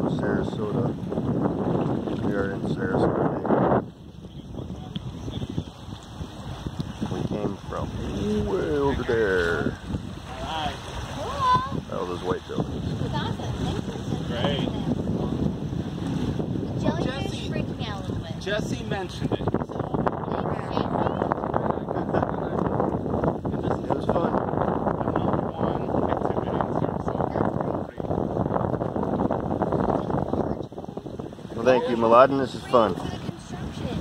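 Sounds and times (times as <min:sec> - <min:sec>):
wind buffeting microphone: 0:00.0 - 0:34.0.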